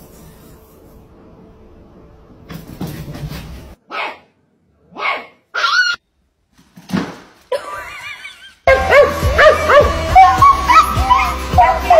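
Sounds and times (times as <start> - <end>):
dog barking: 3.8 - 4.3, 4.9 - 6.0, 8.7 - 10.0.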